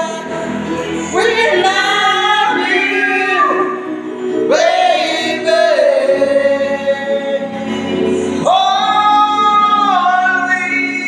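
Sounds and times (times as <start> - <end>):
backing music: 0.0 - 11.0
man singing karaoke: 0.0 - 11.0.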